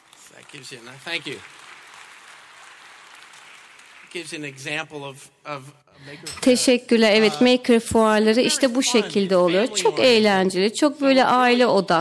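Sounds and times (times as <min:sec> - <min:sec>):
audience applauding: 0:00.0 - 0:04.9.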